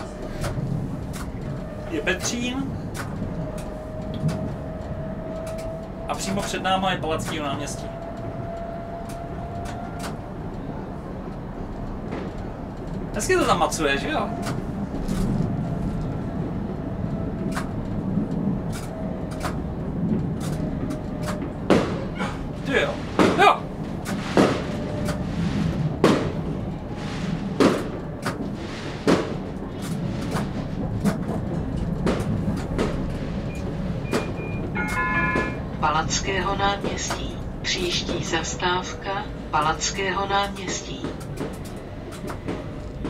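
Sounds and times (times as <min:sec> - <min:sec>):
automated stop announcement: 0:00.0 - 0:25.9, 0:30.2 - 0:43.0
tram running: 0:00.0 - 0:43.0
fireworks bangs: 0:24.2 - 0:30.2.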